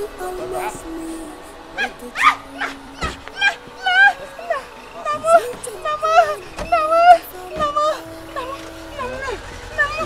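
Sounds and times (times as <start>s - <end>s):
film music: 0.0s - 10.0s
woman wailing: 1.7s - 10.0s.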